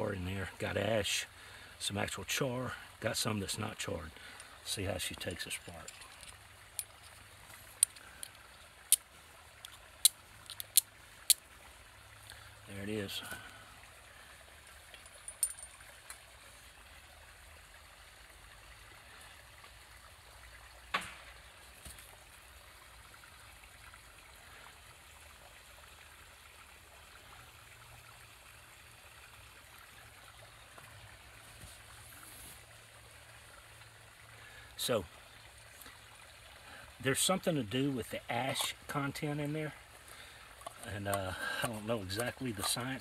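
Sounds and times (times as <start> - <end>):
rushing of running water: 0.0 - 43.0.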